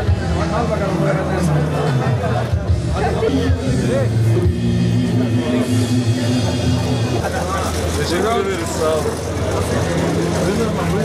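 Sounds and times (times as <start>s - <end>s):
people talking in a crowd: 0.0s - 11.0s
steady low drone: 0.0s - 11.0s.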